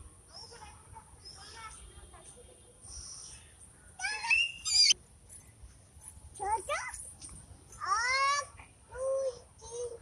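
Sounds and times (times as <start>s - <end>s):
young child squealing: 4.0s - 5.0s.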